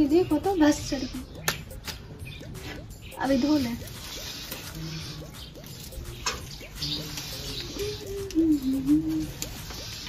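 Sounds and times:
dove cooing: 0.5 - 10.0.

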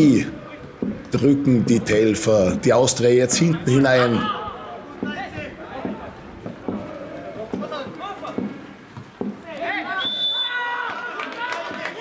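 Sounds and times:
short thuds: 0.6 - 1.3, 5.0 - 9.7
footballers shouting: 3.4 - 12.0.

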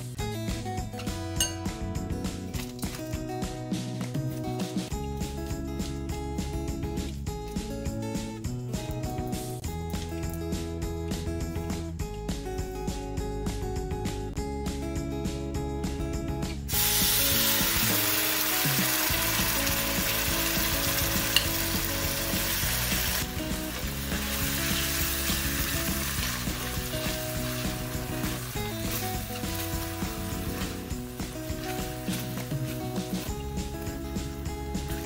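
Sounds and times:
sauce sizzling in hot oil: 16.7 - 35.0.

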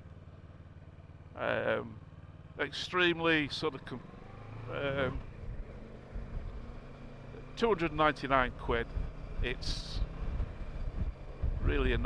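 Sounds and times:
motorcycle engine rumbling: 0.0 - 12.0
wind noise: 8.9 - 12.0.

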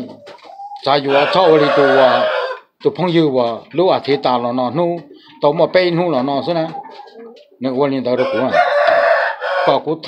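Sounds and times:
people talking: 0.0 - 8.8, 9.7 - 10.0
rooster crowing: 1.0 - 2.7, 8.2 - 9.8.

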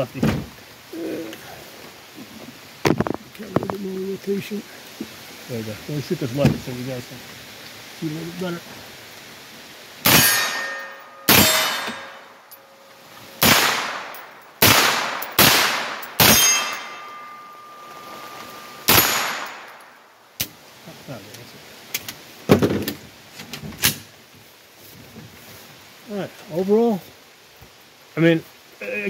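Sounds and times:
rifle shots with echo: 10.0 - 12.2, 13.4 - 17.4, 18.9 - 19.7
ringing tone: 16.4 - 18.9.

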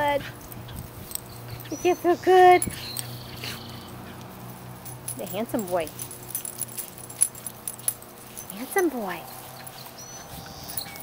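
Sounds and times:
dog collar tags jingling: 0.4 - 11.0.

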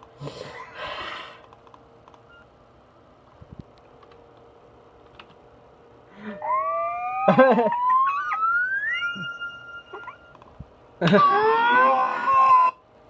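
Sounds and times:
rising whistle-like tone: 6.4 - 10.3.

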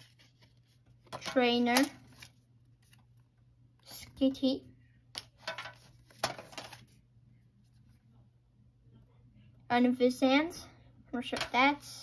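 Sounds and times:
cards rustling: 0.0 - 3.2, 5.2 - 7.0.

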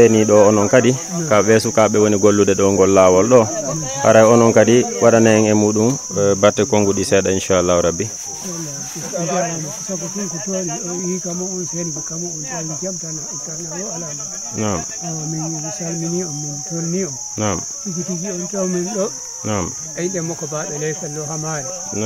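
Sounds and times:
high-pitched insect drone: 0.0 - 22.0
man talking: 0.0 - 22.0.

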